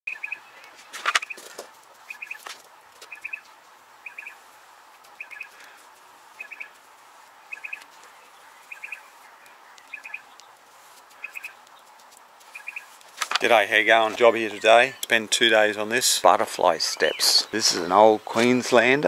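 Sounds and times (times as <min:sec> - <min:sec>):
bird chirping: 0:00.1 - 0:04.4, 0:05.1 - 0:19.0.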